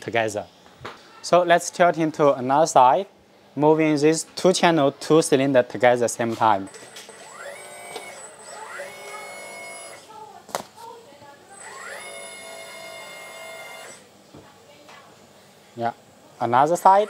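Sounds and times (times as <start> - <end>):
electric hydraulic pump whine: 6.7 - 10.1, 11.6 - 14.0.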